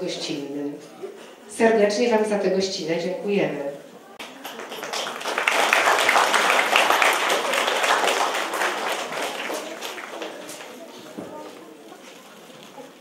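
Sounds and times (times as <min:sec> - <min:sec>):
audience applauding: 0:04.2 - 0:11.1.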